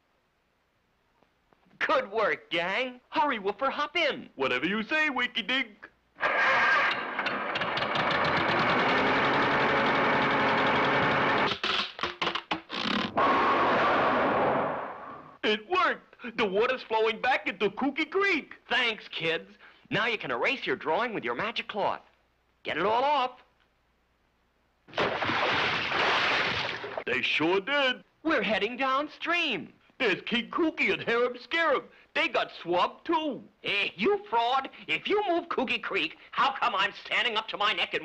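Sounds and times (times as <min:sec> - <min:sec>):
cartoon water splash: 0:24.9 - 0:27.1.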